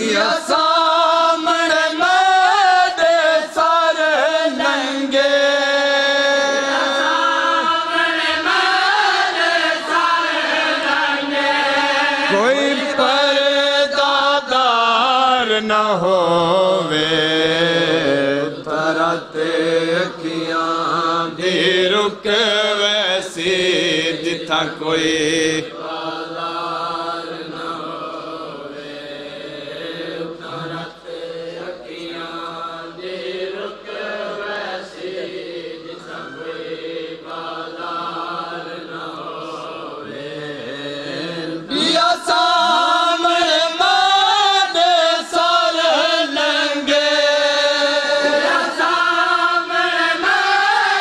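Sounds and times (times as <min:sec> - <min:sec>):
louder higher voice singing: 0:00.0 - 0:51.0
men chanting a lament: 0:00.0 - 0:51.0.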